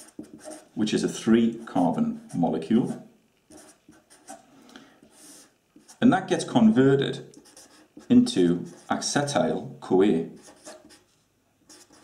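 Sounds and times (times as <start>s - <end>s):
marker pen scratching on paper: 0.0s - 4.4s, 5.0s - 9.1s, 10.3s - 11.1s, 11.7s - 12.0s.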